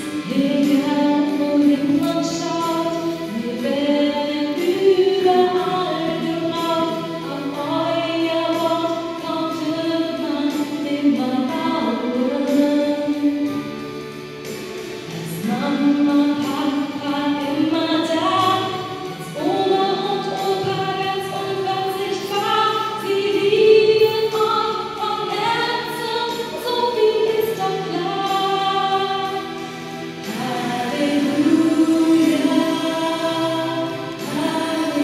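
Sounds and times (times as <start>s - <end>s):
choir singing held chords: 18.6s - 35.0s.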